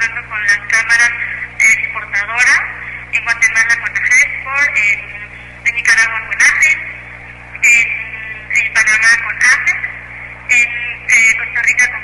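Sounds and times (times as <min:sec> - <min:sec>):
person talking: 0:00.0 - 0:07.0, 0:07.6 - 0:12.0.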